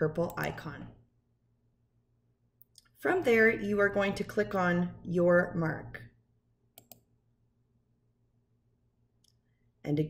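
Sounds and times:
computer mouse clicks: 0:06.8 - 0:07.1.

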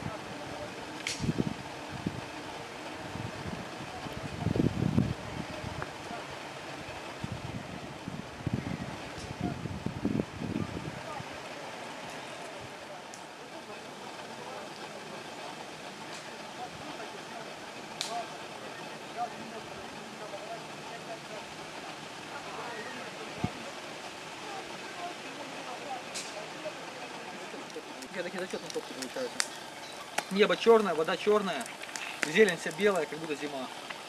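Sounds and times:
faint indistinct voices: 0:00.0 - 0:34.0.

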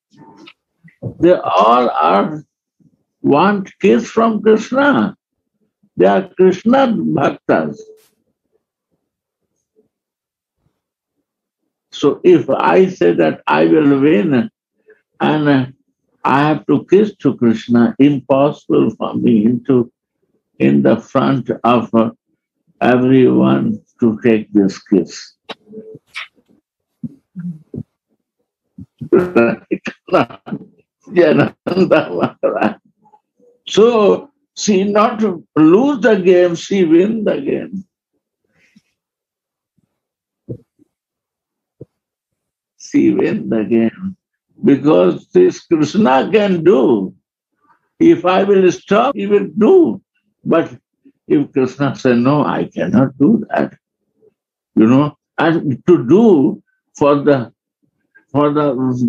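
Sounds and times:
man speaking: 0:01.1 - 0:02.4, 0:03.2 - 0:05.2, 0:06.0 - 0:08.0, 0:12.0 - 0:14.5, 0:15.2 - 0:15.7, 0:16.3 - 0:19.9, 0:20.6 - 0:22.1, 0:22.8 - 0:25.4, 0:28.8 - 0:32.8, 0:33.7 - 0:37.8, 0:42.8 - 0:47.1, 0:48.0 - 0:53.7, 0:54.8 - 0:57.5, 0:58.3 - 0:59.0
faint low scattered sounds: 0:28.8 - 0:37.8.

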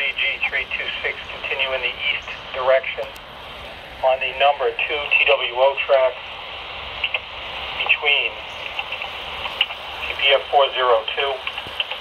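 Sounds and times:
band-limited radio voice: 0:00.0 - 0:03.2, 0:04.0 - 0:12.0
radio static hiss: 0:00.0 - 0:12.0.

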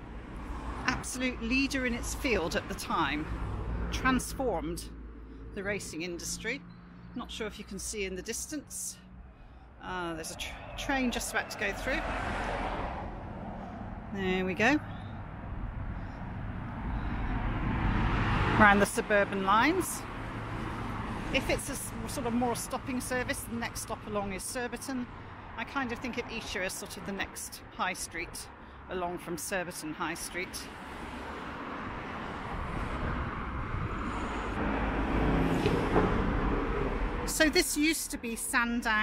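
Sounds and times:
distant train passing: 0:08.9 - 0:20.8
car approaching on road: 0:09.0 - 0:23.3, 0:30.7 - 0:37.3.

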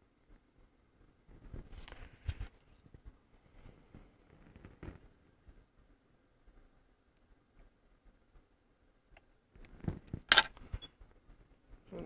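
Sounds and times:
clicks and rustles of hands: 0:03.8 - 0:05.6.

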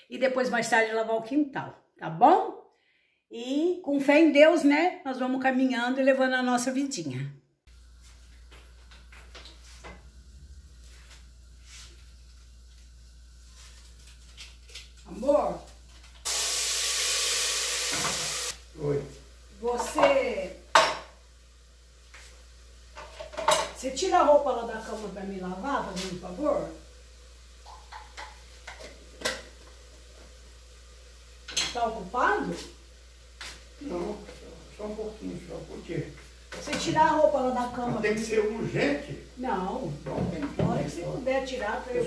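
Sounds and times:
pots and utensils clinking: 0:19.7 - 0:21.2, 0:22.9 - 0:23.8, 0:27.6 - 0:30.3, 0:31.4 - 0:31.9.

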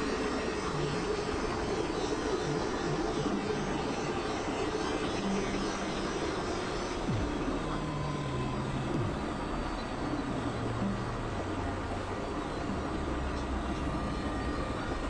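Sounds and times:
synthesizer noise drone music: 0:00.0 - 0:15.0.

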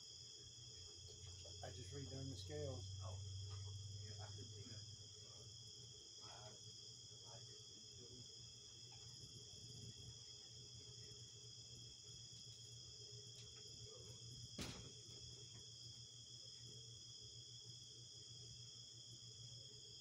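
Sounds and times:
crickets chirring: 0:00.0 - 0:20.0.

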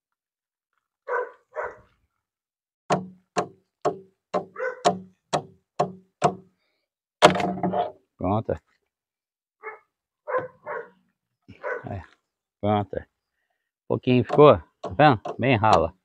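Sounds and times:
dog barking: 0:01.0 - 0:01.9, 0:04.5 - 0:05.0, 0:09.6 - 0:12.0.

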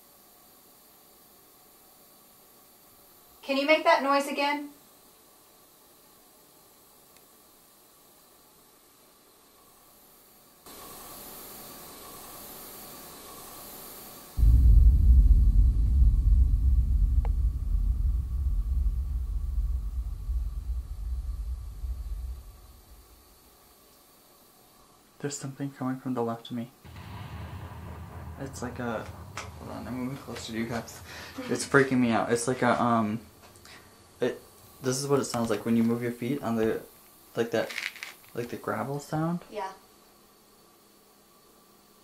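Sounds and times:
faint hiss: 0:00.0 - 0:42.0
low rumble: 0:14.4 - 0:23.4, 0:26.9 - 0:34.2.

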